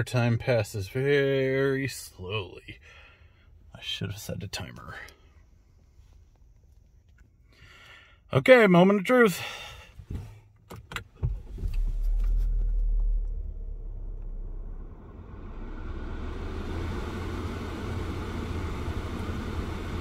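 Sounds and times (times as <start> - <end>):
car engine starting and idling: 9.4 - 20.0.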